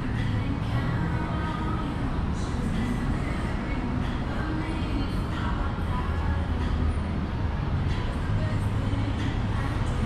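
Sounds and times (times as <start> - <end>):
city street traffic rumble: 0.0 - 10.0.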